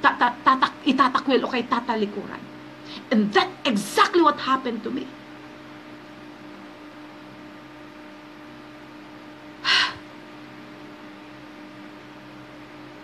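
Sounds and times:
steady low hum: 0.0s - 13.0s
woman's sharp breath: 9.6s - 10.0s.

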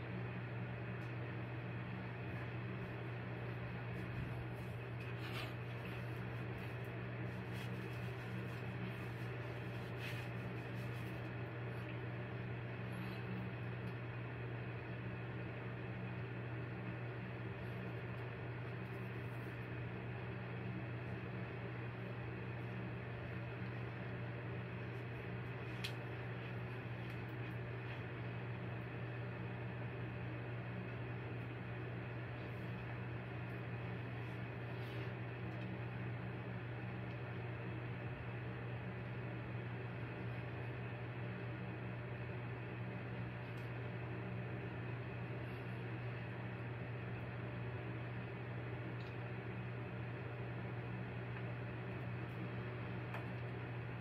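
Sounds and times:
droning mechanical hum: 0.0s - 54.0s.

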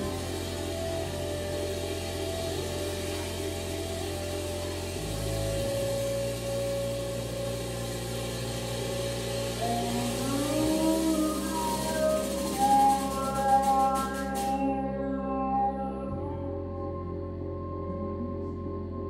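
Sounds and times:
high gliding synth tones: 0.0s - 19.0s
low bass synth hum: 0.0s - 19.0s
steady mid synth tone: 0.0s - 19.0s.

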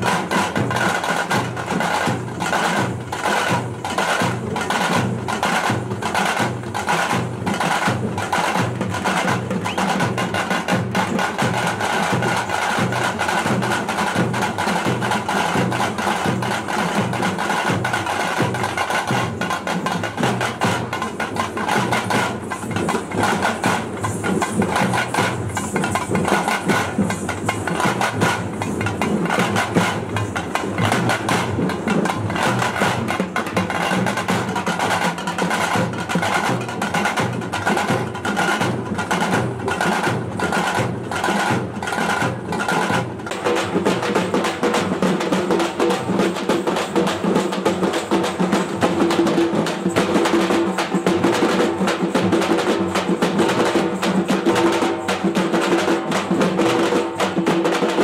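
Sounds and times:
barrel drums beating: 0.0s - 58.0s.

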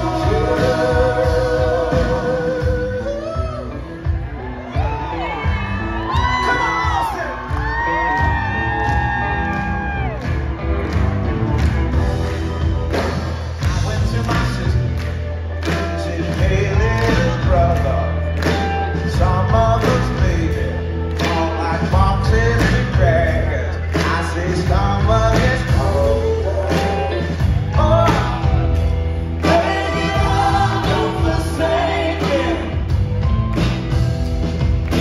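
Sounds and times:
man singing long notes: 0.0s - 3.9s
bass: 0.0s - 35.0s
drums: 0.0s - 35.0s
electric guitars: 0.0s - 35.0s.

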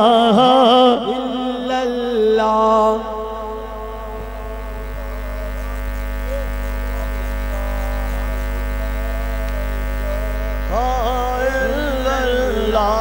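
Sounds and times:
electrical mains hum: 0.0s - 13.0s
droning chord: 3.1s - 13.0s
faint voices: 3.3s - 13.0s.

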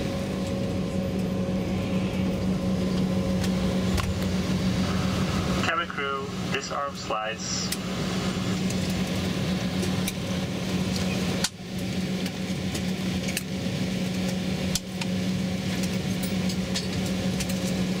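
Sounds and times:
jet airliner cabin drone: 0.0s - 18.0s.

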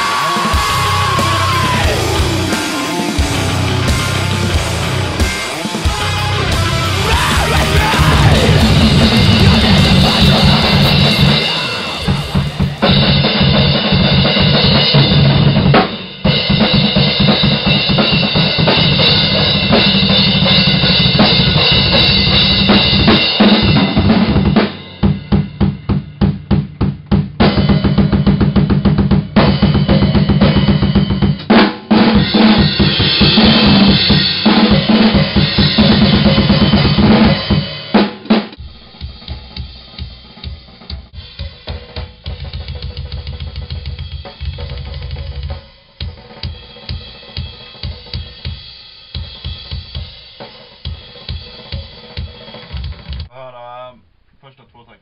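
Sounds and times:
crashing cymbals: 0.0s - 15.0s
kick drum strokes: 0.0s - 17.6s
snare drum: 7.1s - 14.0s.

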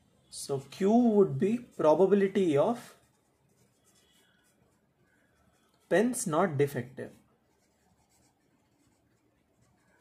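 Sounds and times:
pen scratching on paper: 0.8s - 6.2s, 7.0s - 10.0s.

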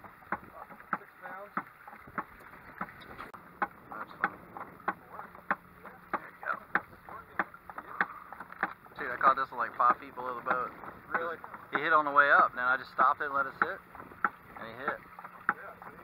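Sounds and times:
low steady hum: 0.0s - 16.0s
rubber mallet knocking on hull: 0.0s - 16.0s.

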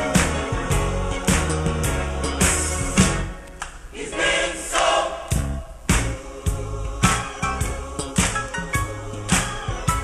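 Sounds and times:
band accompaniment: 0.0s - 3.4s, 5.3s - 10.0s
gospel choir singing: 0.0s - 10.0s.

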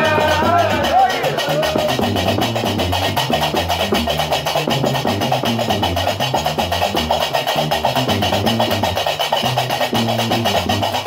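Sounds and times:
plucked bass lute: 0.0s - 11.0s.

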